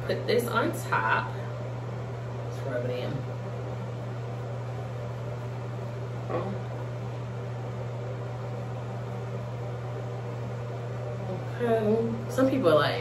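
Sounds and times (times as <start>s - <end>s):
low mechanical hum with hiss: 0.0s - 13.0s.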